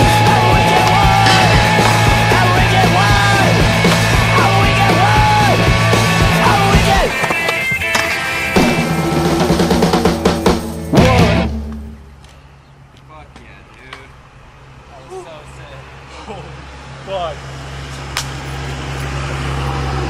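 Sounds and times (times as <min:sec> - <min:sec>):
loud music with vocals: 0:00.0 - 0:07.2, 0:10.9 - 0:11.5.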